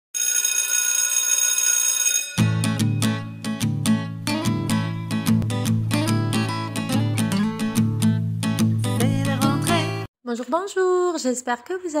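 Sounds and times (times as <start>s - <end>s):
electric bell ringing: 0.2s - 3.6s.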